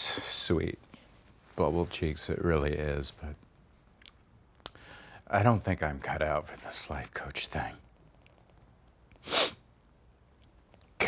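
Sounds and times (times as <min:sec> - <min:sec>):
man breathing through nose: 0:04.7 - 0:05.2.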